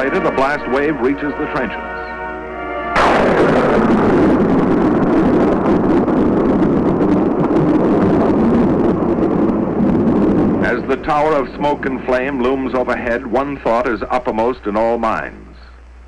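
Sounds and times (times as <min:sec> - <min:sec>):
held music chord: 0:00.0 - 0:05.2
explosion blast roar: 0:02.9 - 0:13.2.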